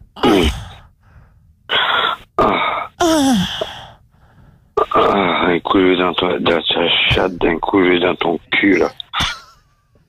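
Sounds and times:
person moaning breathily: 0.2 - 0.9, 2.4 - 4.0
person speaking: 4.8 - 9.2.

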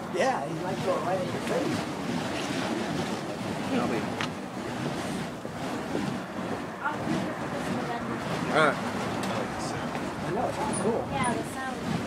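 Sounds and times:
fire poi whooshing: 0.6 - 12.0.

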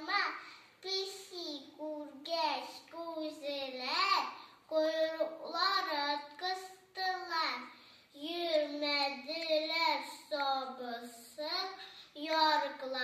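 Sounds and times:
girl reciting in sing-song voice: 0.0 - 13.0.

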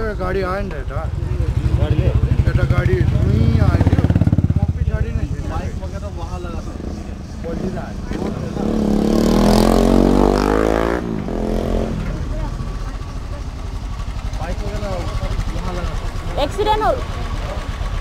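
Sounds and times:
people talking: 0.0 - 11.0, 11.6 - 13.7, 14.4 - 17.8
motorcycles idling: 0.0 - 18.0
vehicle passing: 0.5 - 17.7.

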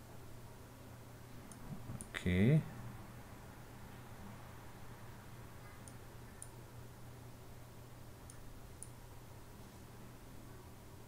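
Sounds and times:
faint low hum: 0.0 - 11.0
computer mouse clicking: 5.8 - 6.6, 8.2 - 9.0.

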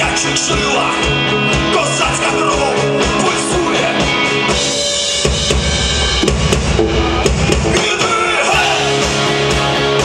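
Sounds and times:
live rock band playing: 0.0 - 10.0
rapid bass drum beats: 0.0 - 10.0
snare and cymbal hits: 4.6 - 10.0.

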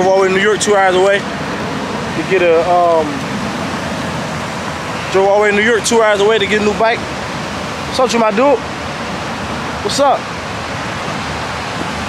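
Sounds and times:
steady rushing hiss: 0.0 - 12.0.

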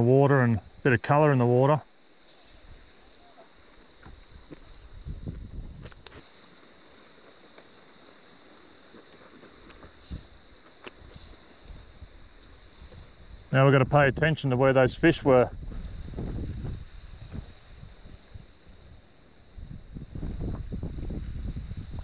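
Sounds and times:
wind rumbling on microphone: 2.5 - 6.3, 9.6 - 22.0
flowing river water: 6.0 - 13.6
faint clicks: 12.3 - 13.5.

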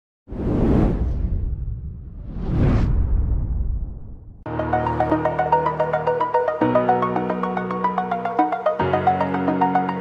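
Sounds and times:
cinematic whoosh: 0.3 - 4.5
deep rumble: 0.4 - 4.5.

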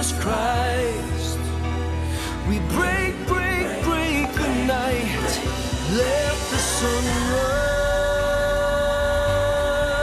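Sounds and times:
band accompaniment: 2.7 - 10.0.

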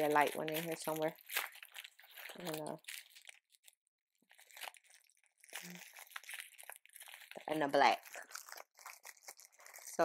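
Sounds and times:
plastic packaging rustling: 0.0 - 10.0.

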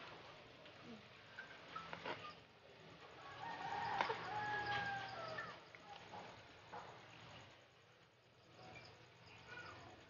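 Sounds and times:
rooster crowing: 3.2 - 5.6.

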